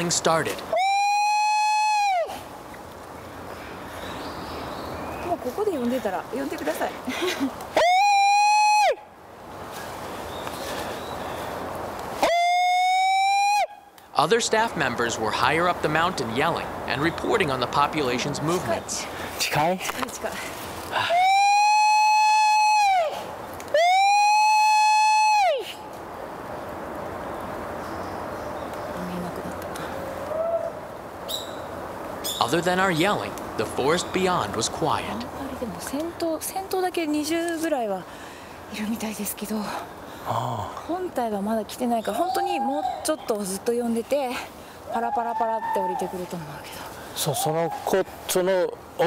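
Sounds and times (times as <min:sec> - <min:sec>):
forest ambience hush: 0:00.0 - 0:49.0.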